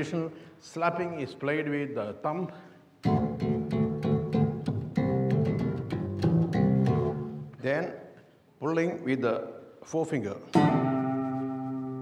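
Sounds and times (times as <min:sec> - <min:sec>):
slap bass guitar: 0:03.0 - 0:07.6, 0:10.6 - 0:12.0.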